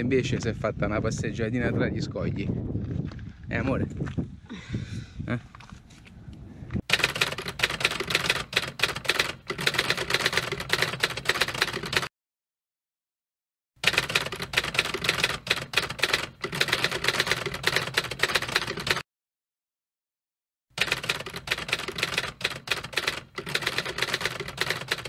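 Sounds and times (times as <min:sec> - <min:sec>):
keyboard keys clacking: 0:06.9 - 0:12.1, 0:13.8 - 0:19.0, 0:20.8 - 0:25.0.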